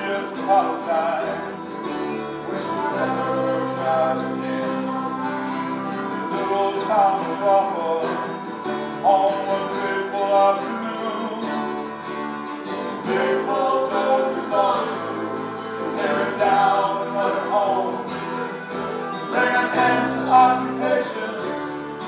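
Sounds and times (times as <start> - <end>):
acoustic folk band playing: 0.0 - 22.0.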